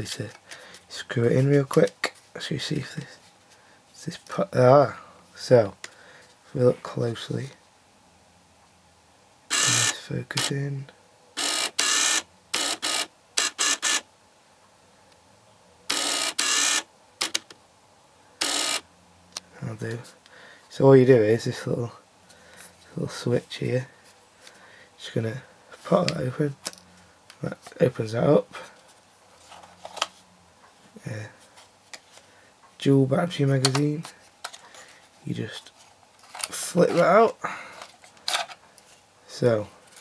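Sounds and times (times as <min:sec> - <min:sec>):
lens autofocus motor whirring: 0:09.5 - 0:10.5, 0:11.4 - 0:14.1, 0:15.9 - 0:17.4, 0:18.4 - 0:18.8.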